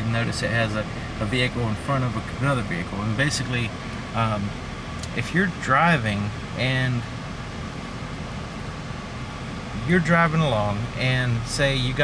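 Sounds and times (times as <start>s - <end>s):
car climate-control fan blowing: 0.0s - 12.0s.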